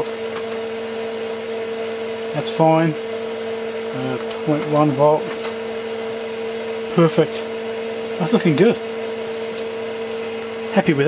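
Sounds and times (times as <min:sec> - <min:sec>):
steady instrument hum: 0:00.0 - 0:11.0.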